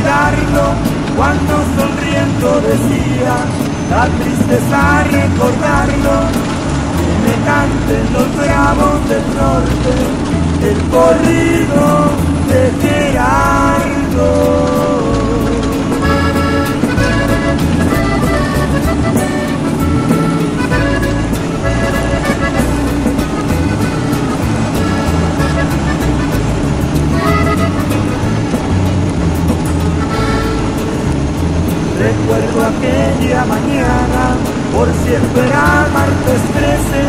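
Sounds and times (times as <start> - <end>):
accordion melody: 0.0 - 37.0
bass and rhythm accompaniment: 0.0 - 37.0.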